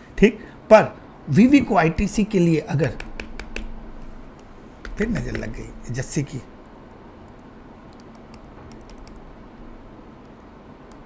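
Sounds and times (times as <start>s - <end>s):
steady low hum: 0.0s - 11.0s
computer keys clicking: 2.8s - 3.7s, 4.8s - 5.6s, 7.3s - 9.2s.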